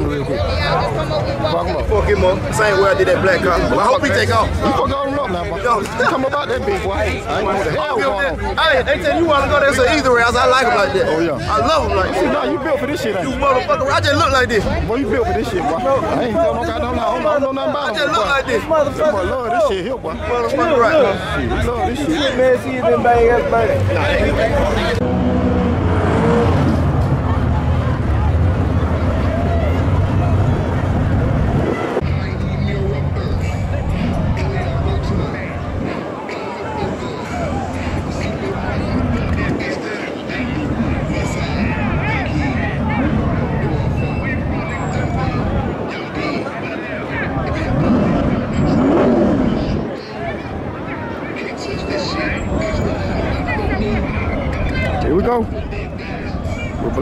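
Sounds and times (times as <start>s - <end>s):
car engines rumbling loud: 0.0s - 57.0s
crowd chatter: 0.0s - 57.0s
engine revving: 24.7s - 31.7s, 47.6s - 49.8s.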